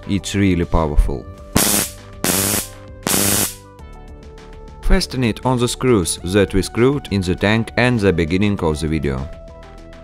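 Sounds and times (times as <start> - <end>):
background music: 0.0 - 10.0
electric arc buzzing: 1.6 - 3.6.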